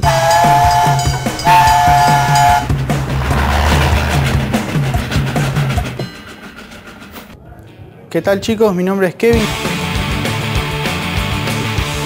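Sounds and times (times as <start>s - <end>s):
two-note train horn effect: 0.0s - 5.1s
rushing noise: 1.8s - 7.0s.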